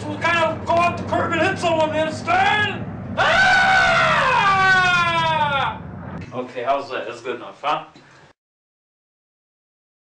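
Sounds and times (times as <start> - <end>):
man's falsetto wail: 3.2 - 5.8.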